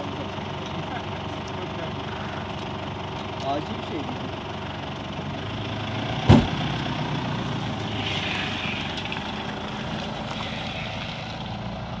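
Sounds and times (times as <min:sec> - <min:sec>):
pickup truck engine in mud: 0:00.0 - 0:12.0
sharp thump: 0:06.3 - 0:06.6.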